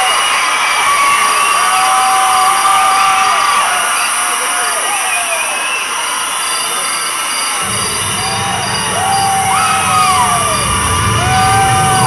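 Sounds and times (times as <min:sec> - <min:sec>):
crowd screaming and cheering: 0:00.0 - 0:12.0.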